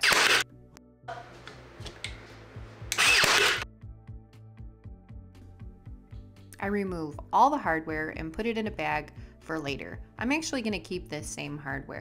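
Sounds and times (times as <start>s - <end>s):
air nailer firing: 0.0s - 0.4s, 2.9s - 3.6s
background music with steady beat: 0.1s - 12.0s.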